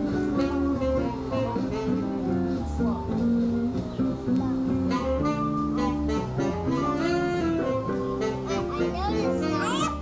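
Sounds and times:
jazz group playing: 0.0s - 10.0s
children calling out: 4.6s - 10.0s.

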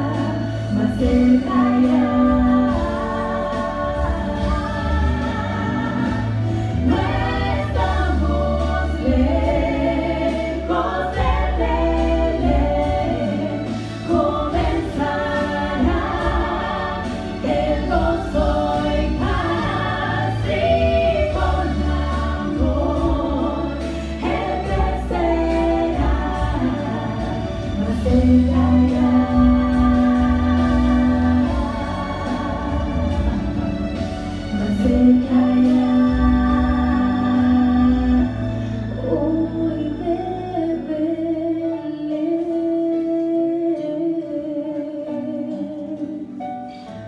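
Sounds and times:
female vocal trio singing: 0.0s - 46.3s
instrumental accompaniment: 0.0s - 47.0s.

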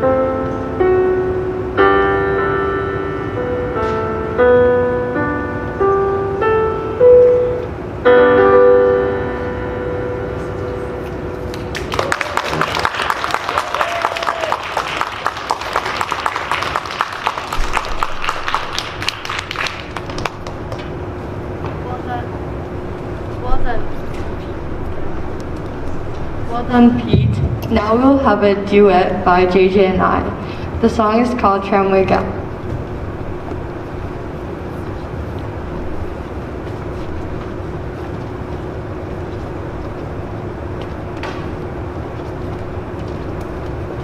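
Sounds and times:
piano final chord: 0.0s - 12.0s
audience applauding: 11.5s - 20.9s.

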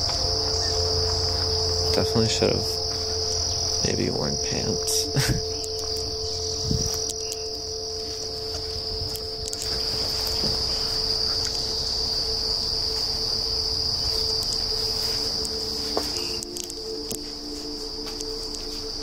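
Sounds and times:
insects shrilling: 0.0s - 19.0s
low steady hum: 0.0s - 19.0s.

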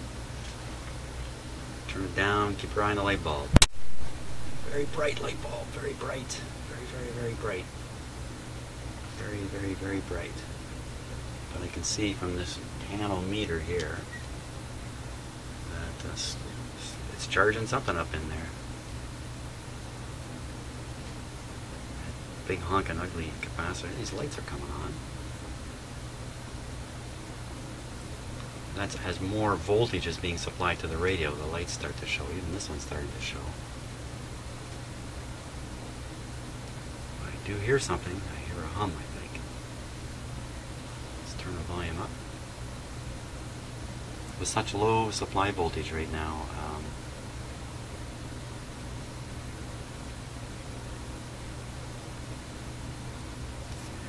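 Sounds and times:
electrical mains hum: 0.0s - 54.0s
faint hiss: 0.0s - 54.0s.

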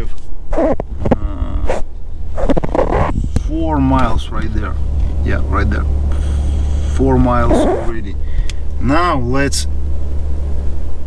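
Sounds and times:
man's hesitation sounds: 0.0s - 9.7s
low car cabin rumble: 0.0s - 11.0s.

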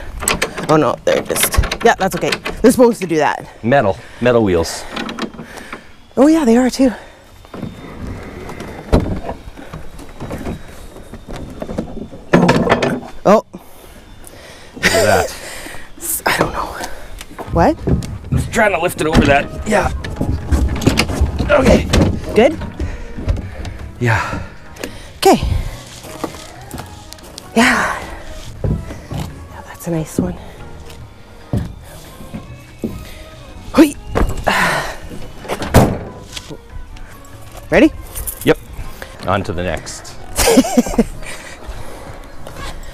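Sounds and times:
wood scraping: 4.0s - 13.2s, 14.8s - 42.9s
tailgate shutting thunk: 7.6s - 10.7s, 17.4s - 25.1s, 34.0s - 36.6s
thumps on truck bed: 8.6s - 10.6s, 11.2s - 13.1s, 17.4s - 25.0s, 28.6s - 29.4s, 31.5s - 33.1s, 34.1s - 34.6s, 35.4s - 36.4s.

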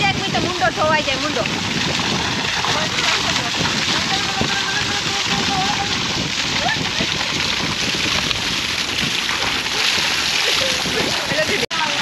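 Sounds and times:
water gushing and splashing: 0.0s - 12.0s.

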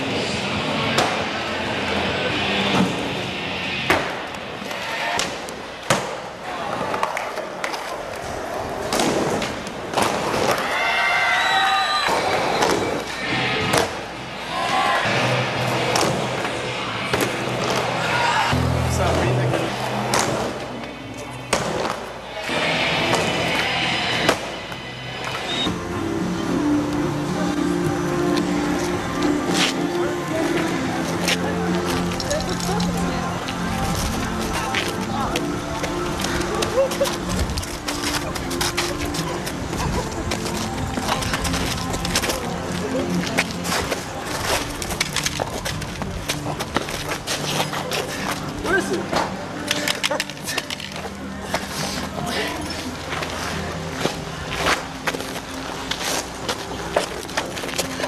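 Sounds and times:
skateboards clacking: 3.9s - 11.0s, 26.8s - 58.0s
skateboard wheels rolling: 3.9s - 58.0s
music playing: 11.4s - 58.0s
voices: 11.9s - 58.0s.

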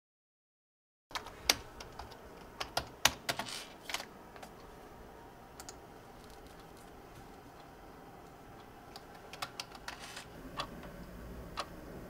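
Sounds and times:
typing on computer keyboard: 1.1s - 4.5s, 5.6s - 6.9s, 8.6s - 10.8s.

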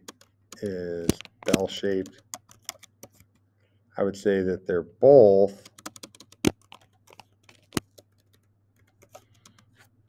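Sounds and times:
computer keyboard keystrokes: 0.0s - 3.4s, 5.6s - 9.7s.

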